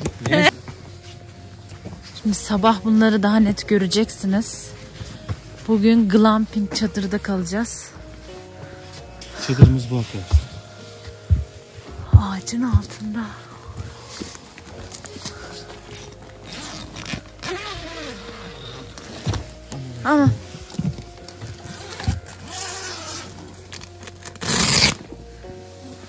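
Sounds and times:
background music: 0.0 - 26.0
tent fabric rustling: 0.0 - 26.0.

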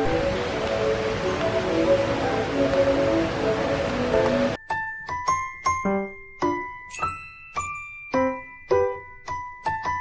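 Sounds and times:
metallophone ringing notes: 4.6 - 10.0.

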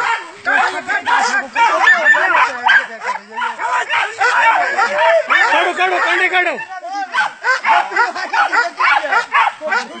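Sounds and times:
dog barking and yipping: 0.0 - 10.0
men shouting and talking: 0.0 - 10.0.

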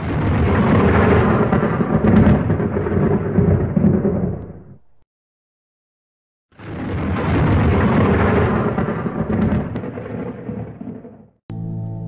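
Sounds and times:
thunder rumbling: 0.0 - 5.0, 6.6 - 11.4.

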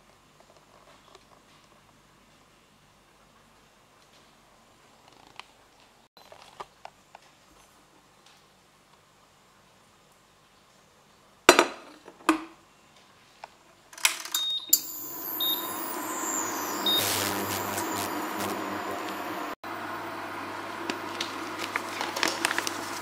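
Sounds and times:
short high beeps: 14.4 - 19.6
induction hob humming: 14.7 - 21.6
high whine falling in pitch: 14.8 - 19.6.

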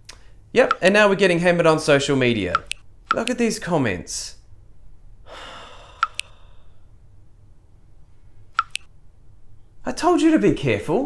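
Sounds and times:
notification double clicks: 2.6 - 3.3, 8.6 - 8.9.

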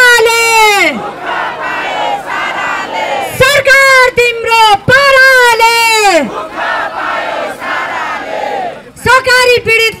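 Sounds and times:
woman shouting through loudspeakers: 0.0 - 1.0, 3.2 - 6.3, 8.9 - 10.0
crowd chanting: 0.9 - 3.4, 6.2 - 8.9.

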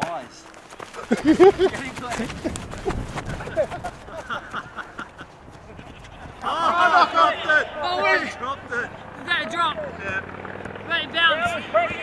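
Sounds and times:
people shouting and laughing: 0.9 - 10.1.

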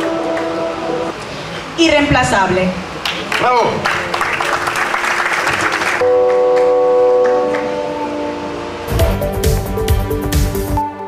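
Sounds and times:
sustained chord: 0.0 - 1.2, 6.0 - 11.0
electronic beat music: 6.0 - 11.0.

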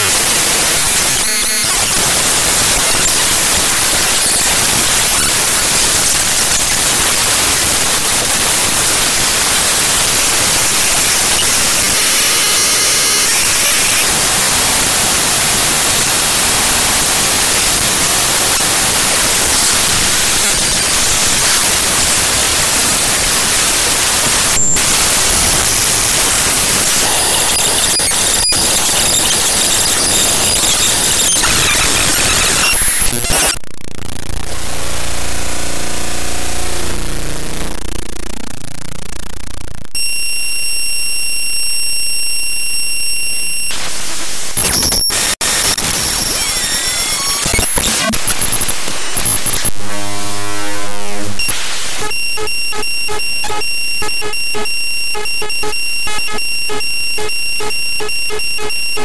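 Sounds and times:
hissing static: 0.0 - 40.0, 43.7 - 57.4
gliding electronic tones: 47.5 - 52.8.

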